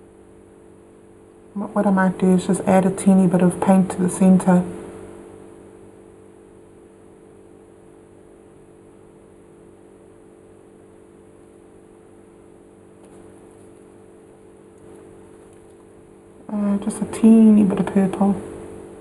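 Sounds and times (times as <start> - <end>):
faint electrical hum: 0.0 - 19.0.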